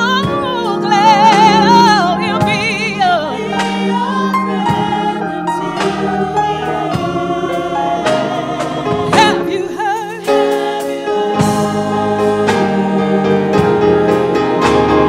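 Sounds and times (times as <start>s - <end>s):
drum kit: 0.0s - 15.0s
women's choir singing gospel: 0.0s - 15.0s.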